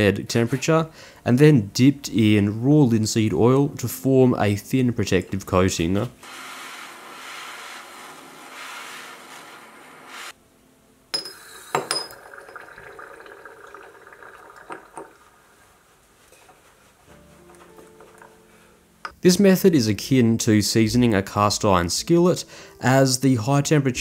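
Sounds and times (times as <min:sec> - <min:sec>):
steady hiss: 0:06.1 - 0:10.4
hot metal sizzling in oil: 0:06.2 - 0:10.4
metal clinking against glass: 0:11.2 - 0:12.7.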